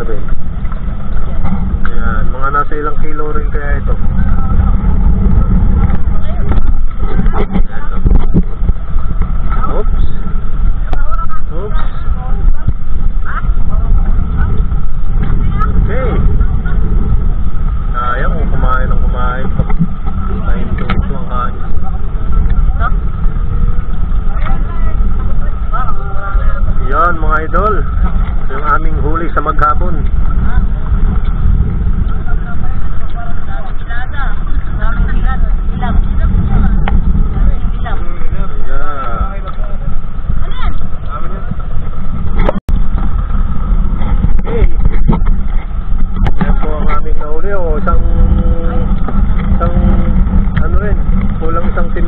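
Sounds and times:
boat engine running: 0:00.0 - 0:52.0
voices talking: 0:00.0 - 0:52.0.

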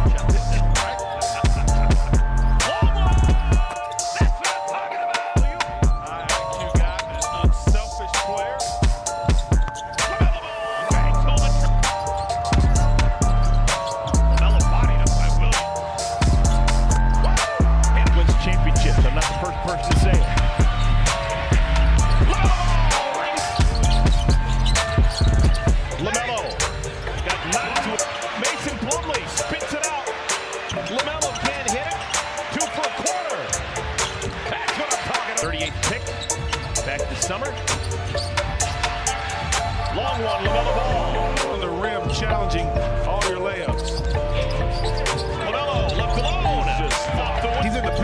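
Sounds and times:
music with heavy bass beat: 0:00.0 - 0:04.7, 0:05.4 - 0:48.0
crowd noise: 0:00.0 - 0:48.0
sneakers squeaking: 0:05.6 - 0:42.4, 0:43.5 - 0:47.6.

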